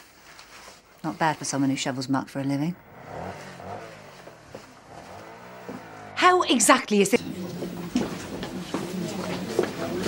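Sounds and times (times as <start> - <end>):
murmur of voices: 7.2 - 10.0.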